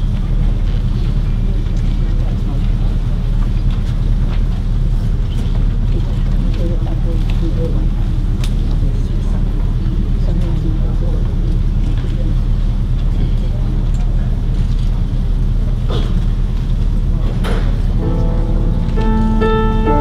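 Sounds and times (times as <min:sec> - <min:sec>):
faint murmuring: 0:05.1 - 0:16.4
piano playing sustained chords: 0:17.9 - 0:20.0
steady low rumble: 0:17.9 - 0:20.0.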